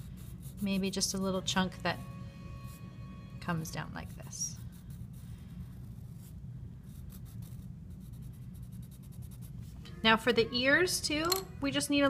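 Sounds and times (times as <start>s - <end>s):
pencil scratching on paper: 0.0s - 2.0s, 3.5s - 10.8s.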